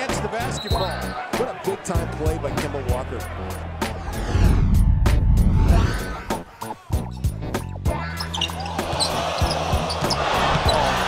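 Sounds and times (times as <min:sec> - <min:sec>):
arena crowd noise: 0:00.0 - 0:04.3, 0:08.7 - 0:11.0
background music with bass: 0:00.0 - 0:11.0.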